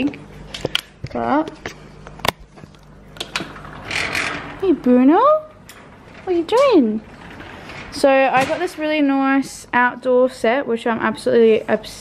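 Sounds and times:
screen door sliding: 3.2s - 9.8s.

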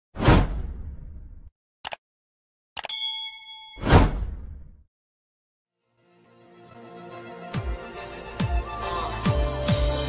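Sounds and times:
whoosh and hit: 0.2s - 1.5s, 3.8s - 4.8s
bright ding: 2.8s - 3.8s.

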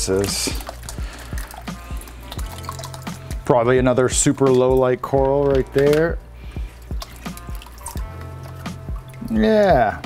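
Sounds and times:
quiet background music: 0.0s - 10.0s
water dripping and splashing: 0.0s - 10.0s.

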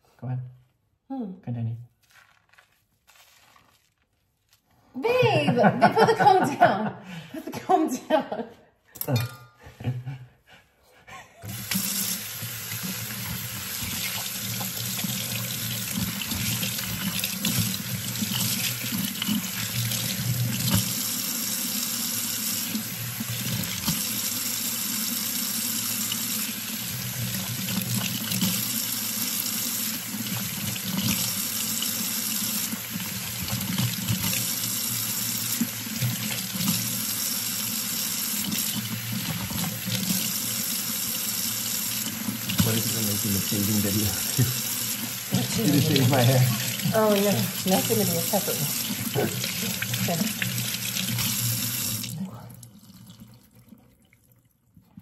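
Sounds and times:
hands rinsing hair: 2.0s - 6.1s, 11.4s - 53.8s
faucet running into sink: 11.4s - 54.2s.

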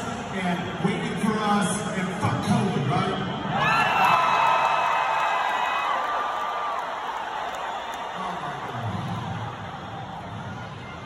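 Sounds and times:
arena crowd cheering and whooping: 2.9s - 11.0s.

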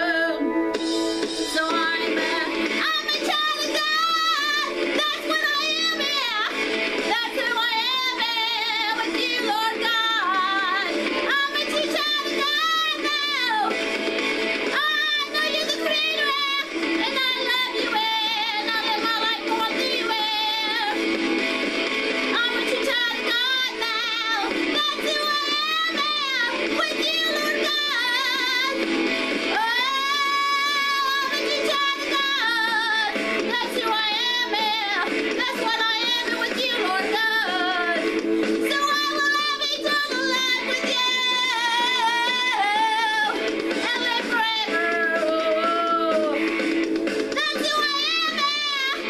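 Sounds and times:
woman singing with vibrato: 0.0s - 0.5s, 1.4s - 13.8s, 14.7s - 21.1s, 22.3s - 28.9s, 29.5s - 46.6s, 47.3s - 49.0s.

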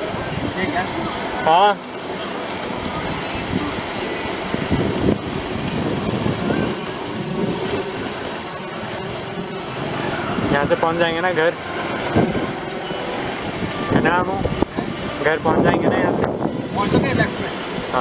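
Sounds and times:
wind rushing over microphone: 0.0s - 1.5s, 2.6s - 18.0s.

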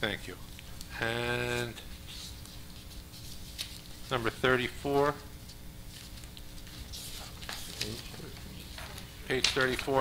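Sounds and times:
papers rustling: 2.0s - 4.2s, 4.9s - 10.0s.

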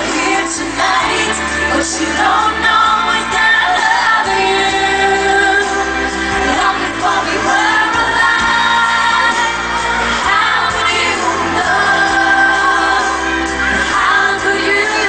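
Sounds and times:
live pop music: 0.0s - 15.0s
women singing into microphones: 0.0s - 15.0s.

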